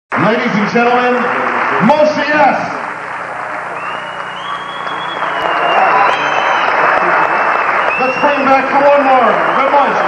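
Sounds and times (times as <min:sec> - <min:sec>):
audience applauding: 0:00.1 - 0:10.0.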